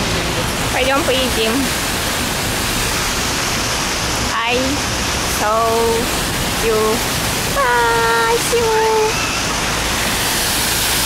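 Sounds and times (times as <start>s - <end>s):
fountain water splashing: 0.0s - 11.0s.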